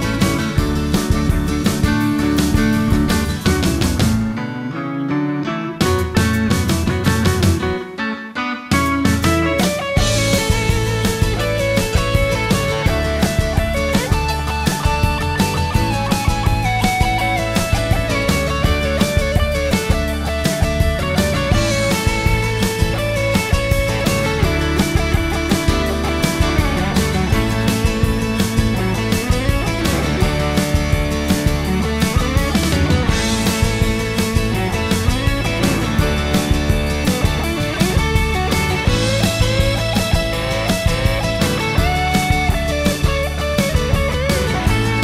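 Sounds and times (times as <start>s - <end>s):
electric guitar melody: 0.0s - 45.0s
rock band playing: 0.0s - 45.0s.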